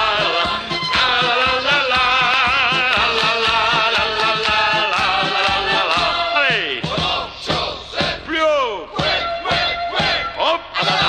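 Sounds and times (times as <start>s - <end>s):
novelty song with beat: 0.0s - 11.0s.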